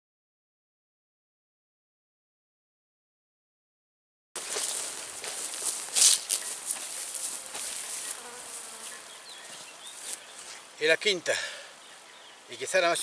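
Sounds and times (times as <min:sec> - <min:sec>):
insects buzzing and chirping: 0:04.4 - 0:13.0.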